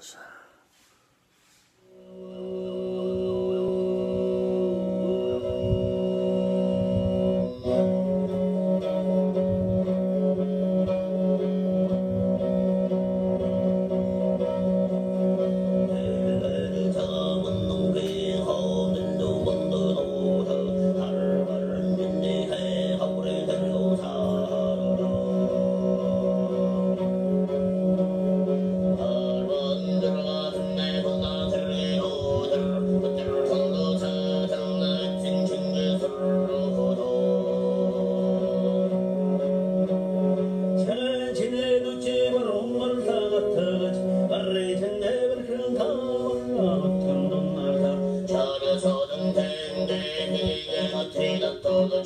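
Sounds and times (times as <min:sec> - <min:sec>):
man throat singing: 0:02.0 - 0:39.5
plucked strings: 0:03.5 - 0:52.0.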